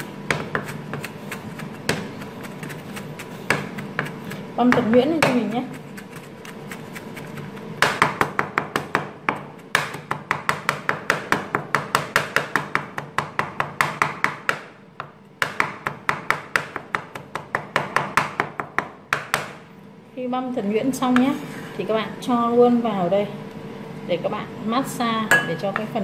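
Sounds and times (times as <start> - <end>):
knife chopping on wooden board: 0.0 - 19.6.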